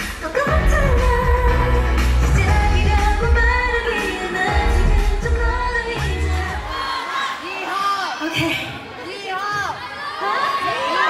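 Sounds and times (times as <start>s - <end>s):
heavy bass beat: 0.0s - 6.7s
pop dance song with vocals: 0.0s - 11.0s.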